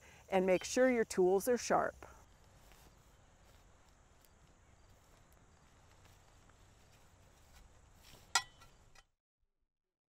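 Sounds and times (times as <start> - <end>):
faint outdoor ambience: 0.0 - 9.1
metal spade striking ground: 8.0 - 9.1.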